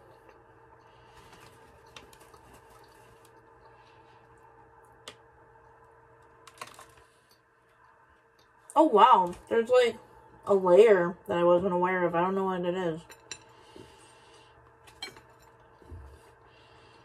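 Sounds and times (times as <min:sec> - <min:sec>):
faint steady hum: 0:00.0 - 0:17.0
soft clicks of chewing a cookie: 0:00.1 - 0:08.8.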